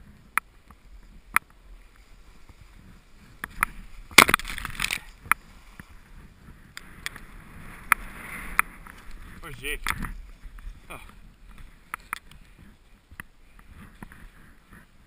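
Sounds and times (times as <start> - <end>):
ski swishing through snow: 0.0 - 15.0.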